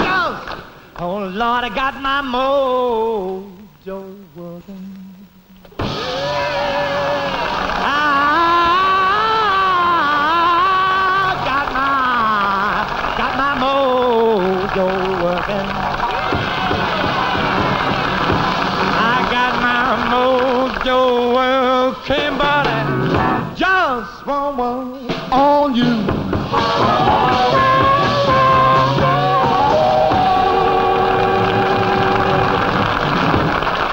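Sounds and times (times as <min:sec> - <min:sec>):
rhythm and blues band playing: 0:05.8 - 0:33.9
audience applause: 0:05.9 - 0:23.0, 0:26.5 - 0:33.9
drums marking the beat: 0:16.2 - 0:21.0, 0:22.1 - 0:23.6, 0:24.3 - 0:33.8.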